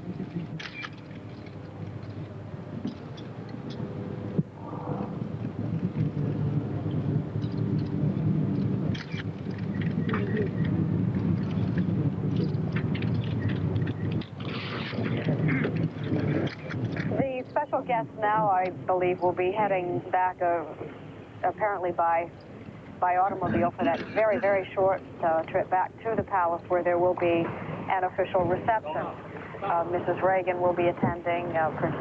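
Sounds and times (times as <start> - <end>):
steady low rumble: 0.0 - 32.0.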